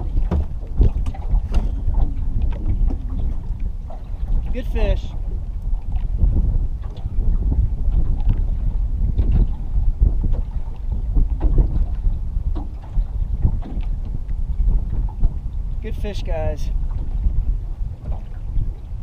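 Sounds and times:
water slapping boat hull: 0.0s - 19.0s
wind buffeting microphone: 0.0s - 19.0s.

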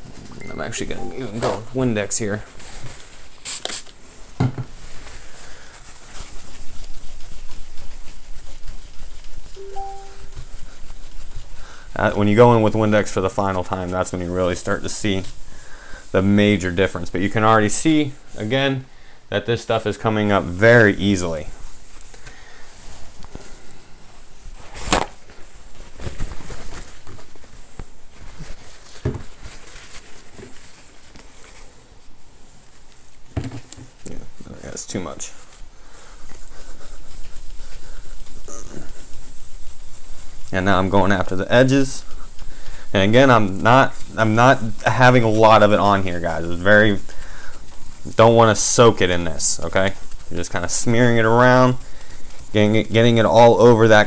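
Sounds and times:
cloth rubbing on glass screen: 34.9s - 54.0s.

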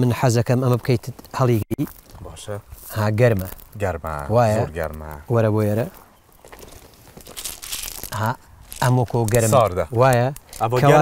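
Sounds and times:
footsteps on gravel: 1.1s - 9.6s
hand scraping at ground: 1.2s - 9.7s.

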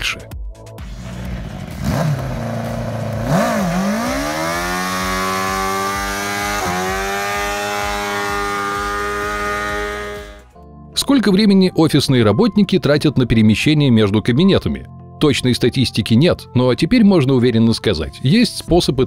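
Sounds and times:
engine revving: 0.8s - 10.6s.

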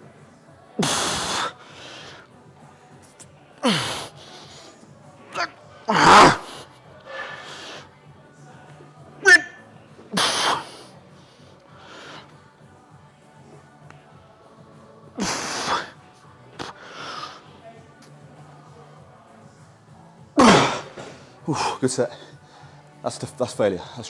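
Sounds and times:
man grunting: 3.6s - 4.1s.

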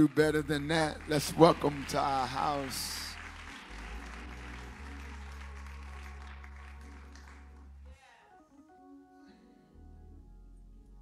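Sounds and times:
congregation applauding: 0.0s - 8.2s
instrumental music with bass notes: 0.2s - 8.0s, 9.7s - 11.0s.

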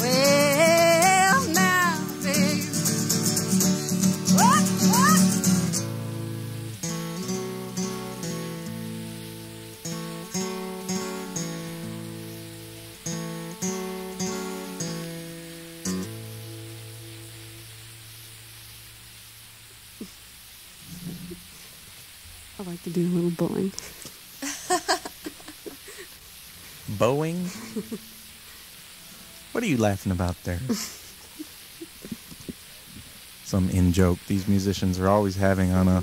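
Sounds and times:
acoustic guitar playing: 0.0s - 18.8s, 20.8s - 21.6s, 26.6s - 30.4s.

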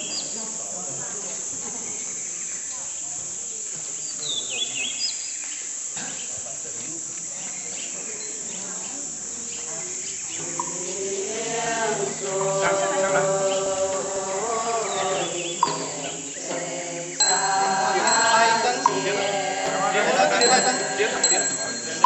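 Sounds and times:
bird chirps: 0.0s - 0.4s, 4.0s - 6.4s, 7.4s - 11.3s, 13.4s - 16.5s
high-pitched insect drone: 6.6s - 22.0s.

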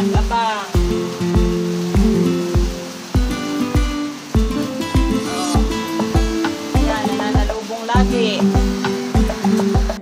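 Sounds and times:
background music with steady beat: 0.0s - 10.0s
low kick drum: 0.2s - 10.0s
high sliding vocal phrase: 5.1s - 7.5s.

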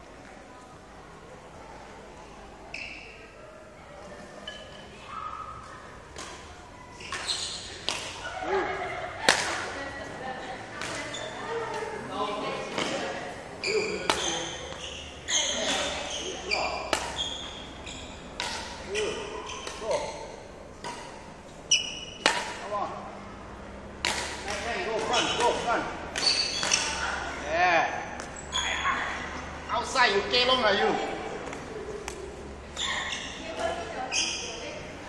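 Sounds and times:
racket striking shuttlecock: 6.1s - 8.2s, 9.2s - 9.8s, 14.0s - 14.8s, 16.9s - 17.5s, 18.3s - 21.3s, 21.9s - 22.7s, 24.0s - 27.2s.

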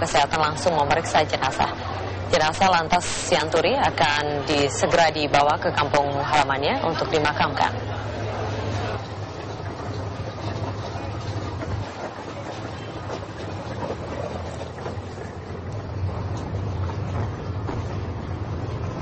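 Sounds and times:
outdoor background noise: 0.0s - 19.0s
vehicle engines rumbling: 0.0s - 19.0s.

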